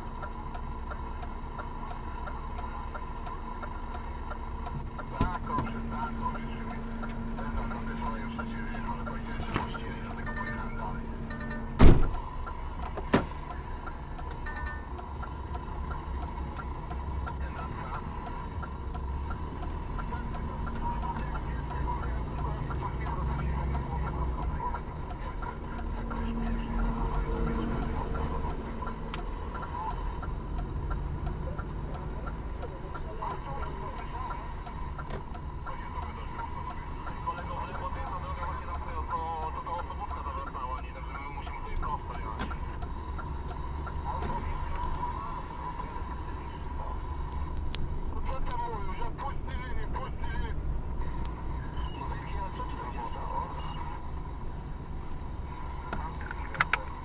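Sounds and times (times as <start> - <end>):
light ticking: 0.0 - 11.2, 12.2 - 40.6, 41.2 - 51.7
vehicle engine and tyre rumble: 0.0 - 57.0.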